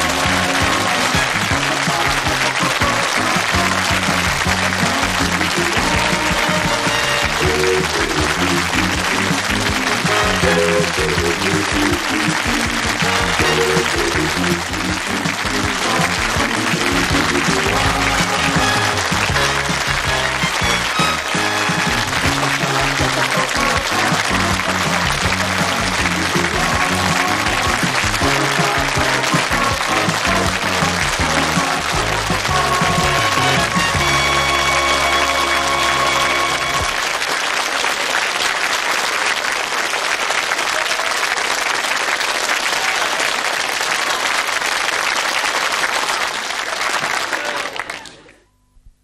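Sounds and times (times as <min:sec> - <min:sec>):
sitcom theme music: 0:00.0 - 0:37.2
studio audience applause: 0:00.0 - 0:48.3.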